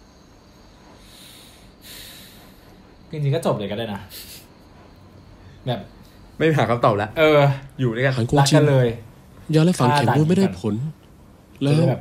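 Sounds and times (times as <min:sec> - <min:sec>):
breaths out through nose: 0:01.0 - 0:02.6.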